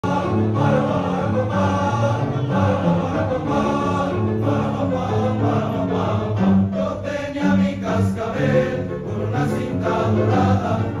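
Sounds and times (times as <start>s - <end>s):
choir of male voices singing: 0.0s - 11.0s.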